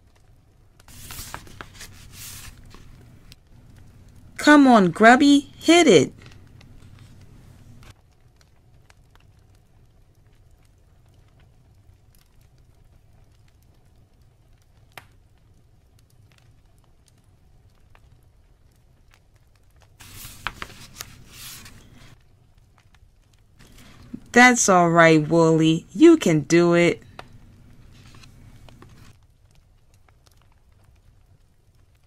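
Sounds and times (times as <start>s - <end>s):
faint room hum: 0.0s - 32.0s
book page turning: 0.9s - 4.3s, 6.1s - 7.9s, 20.0s - 22.2s, 27.0s - 29.1s.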